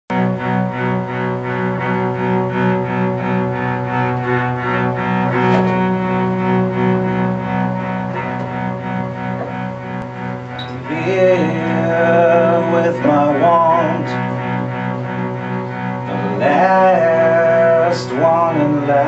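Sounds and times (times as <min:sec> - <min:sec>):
acoustic band playing: 0:00.1 - 0:19.0.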